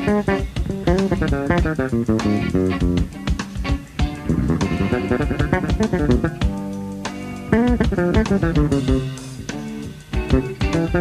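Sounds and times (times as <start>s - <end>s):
drum kit: 0.0s - 11.0s
electric bass funk line: 0.0s - 11.0s
electric guitar: 0.0s - 11.0s.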